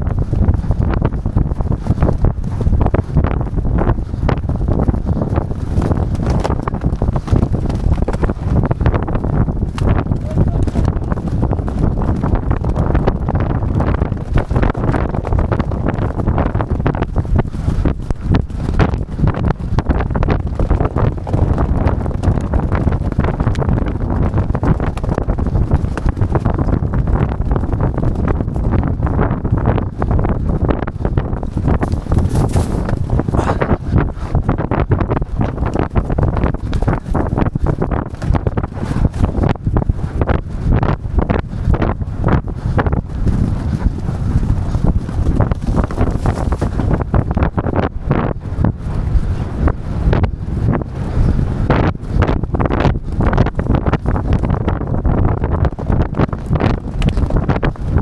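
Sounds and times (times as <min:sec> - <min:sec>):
wind buffeting microphone: 0:00.0 - 0:58.0
hoofbeats on turf: 0:00.1 - 0:47.8.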